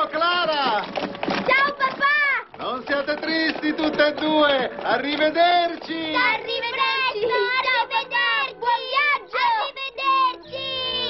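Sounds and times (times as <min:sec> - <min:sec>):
voices shouting farewell: 0:05.0 - 0:11.0.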